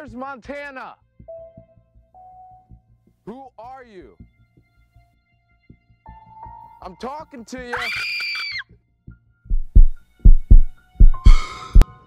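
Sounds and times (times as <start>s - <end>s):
heartbeat thumps: 9.5s - 11.8s
harsh breathy noise: 11.2s - 11.8s.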